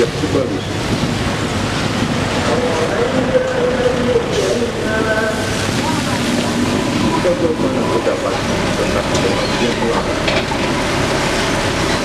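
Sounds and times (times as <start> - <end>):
diesel truck engine under load: 0.0 - 12.0
truck body and tyres rattling: 0.0 - 12.0.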